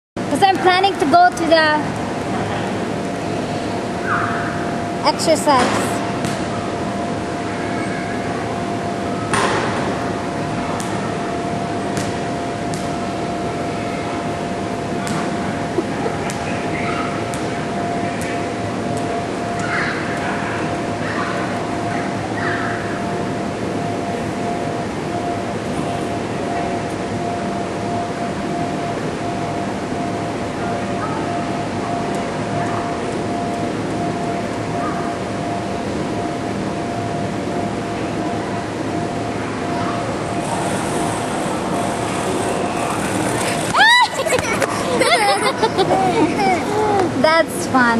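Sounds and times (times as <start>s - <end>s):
steady room hum: 0.2s - 47.9s
ball bouncing on gym floor: 5.6s - 6.5s, 12.0s - 12.9s.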